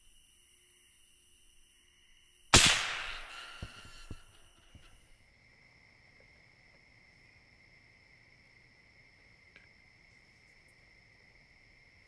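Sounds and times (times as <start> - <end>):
insects trilling: 0.0 - 12.0
rifle shot: 2.5 - 4.2.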